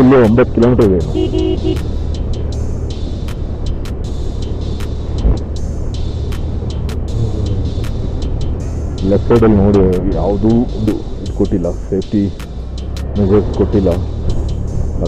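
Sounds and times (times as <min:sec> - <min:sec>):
scooter engine running: 0:01.2 - 0:01.8
low thump: 0:05.2 - 0:05.5.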